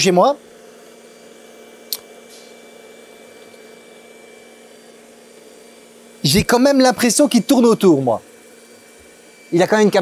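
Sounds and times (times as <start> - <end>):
robot vacuum whirring: 0.0 - 10.0.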